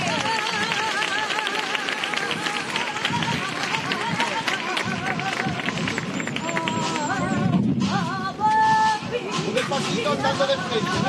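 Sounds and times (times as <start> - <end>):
person singing unaccompanied: 0.0 - 11.0.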